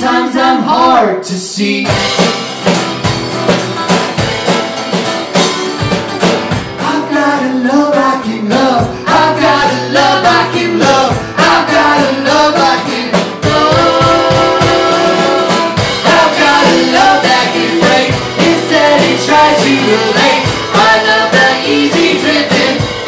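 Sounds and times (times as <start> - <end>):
bucket drums and cymbals beat: 1.8 - 23.0
acoustic guitar strumming: 1.9 - 23.0
person singing: 6.8 - 23.0.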